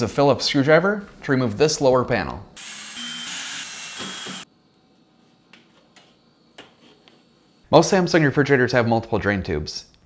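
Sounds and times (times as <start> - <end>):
power screwdriver running: 2.6 - 4.4.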